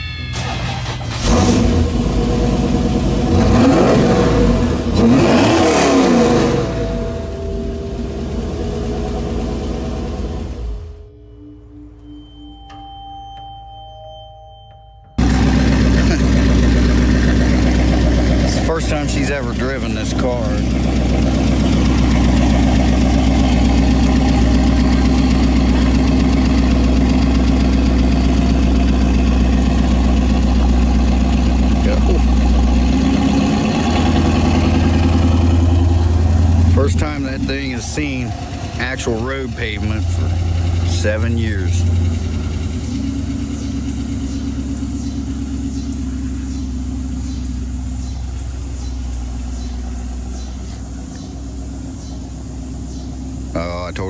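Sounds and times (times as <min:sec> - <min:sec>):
car engine idling and driving off: 0:00.0 - 0:54.0
voices: 0:18.2 - 0:26.5, 0:31.6 - 0:32.5, 0:36.6 - 0:42.1, 0:43.0 - 0:54.0.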